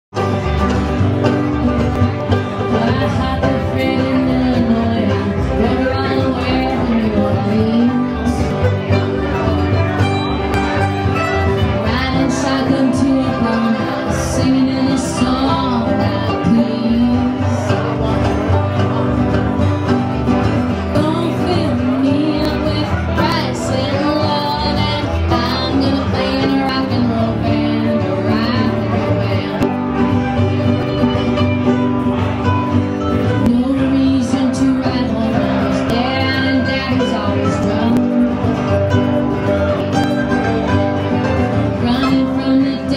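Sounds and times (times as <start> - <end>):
live country band playing: 0.1 - 42.9.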